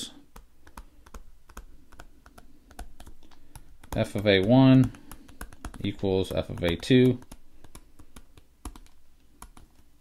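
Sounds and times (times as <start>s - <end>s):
stylus tapping on tablet: 0.3s - 9.9s.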